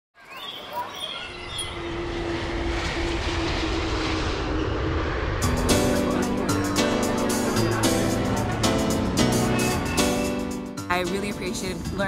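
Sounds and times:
jet airliner passing overhead: 0.6s - 10.8s.

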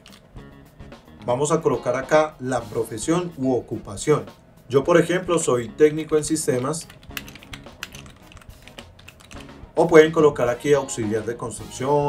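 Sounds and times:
computer keyboard typing: 0.0s - 0.2s, 6.0s - 9.6s
soft background music: 0.0s - 12.0s.

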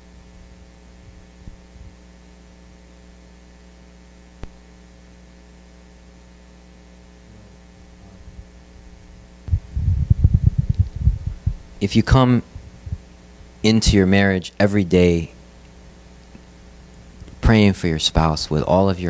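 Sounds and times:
steady mains hum: 0.0s - 19.0s
microphone handling thumps: 1.0s - 2.0s, 9.1s - 14.0s.

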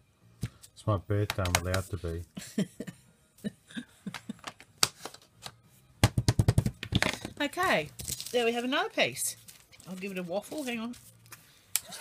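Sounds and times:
rubber stamps tapping on table: 6.0s - 7.3s.

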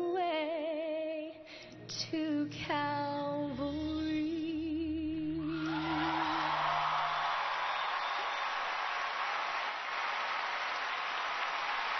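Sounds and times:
audience applauding: 5.6s - 11.9s.

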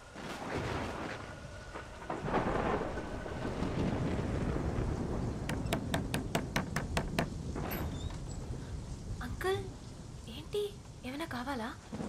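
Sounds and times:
steady rain: 0.0s - 12.0s
low thunder rumble: 0.4s - 11.0s.

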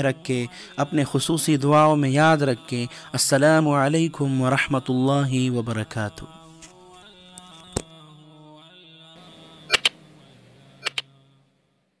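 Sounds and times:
chant-like background music: 0.0s - 12.0s
mouse-click sound effects: 9.7s - 10.0s, 10.8s - 11.1s.

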